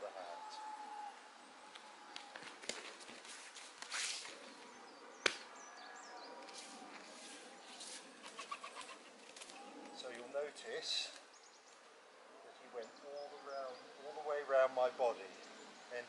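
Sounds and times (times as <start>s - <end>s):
faint birdsong: 0.0s - 16.0s
bare feet shuffling on mats: 2.2s - 4.6s.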